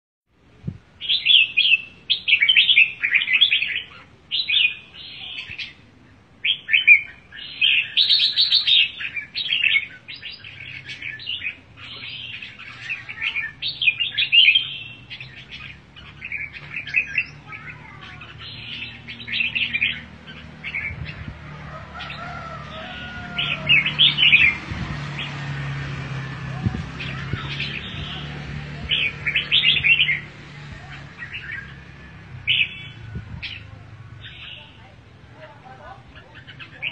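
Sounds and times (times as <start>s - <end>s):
birds singing whistled phrases: 1.0s - 25.7s, 26.7s - 35.0s, 36.0s - 36.9s.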